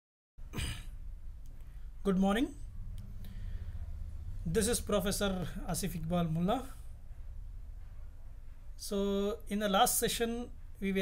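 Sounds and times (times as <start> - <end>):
low steady hum: 0.4 - 11.0
man speaking: 2.0 - 2.6, 4.4 - 6.8
man breathing: 3.2 - 4.0.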